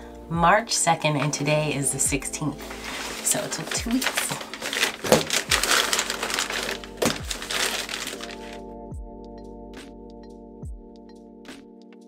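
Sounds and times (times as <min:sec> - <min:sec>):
music with kick-drum beat: 0:02.1 - 0:02.3, 0:05.1 - 0:06.0, 0:07.0 - 0:07.5, 0:08.8 - 0:12.0
paper wrapping crinkling: 0:02.5 - 0:08.6
scissors cutting plastic: 0:02.8 - 0:08.6.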